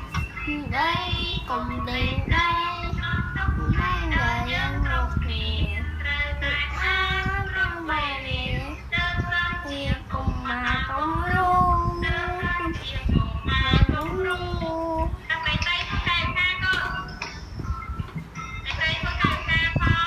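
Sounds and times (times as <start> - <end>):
boy singing: 0.0 - 17.1, 18.7 - 20.0.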